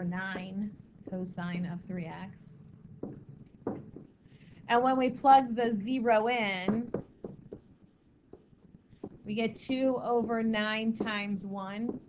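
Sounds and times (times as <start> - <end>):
stylus writing on screen: 0.0 - 4.2, 4.8 - 12.0.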